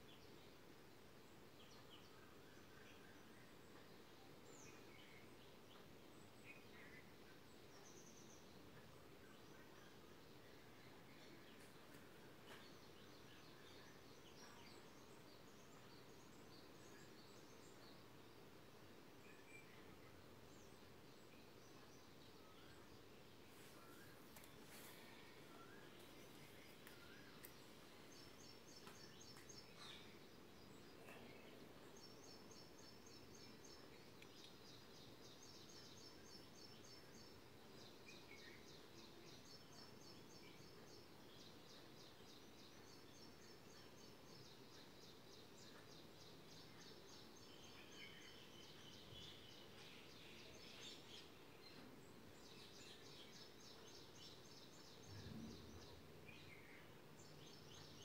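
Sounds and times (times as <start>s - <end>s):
distant birds chirping: 0.0s - 58.0s.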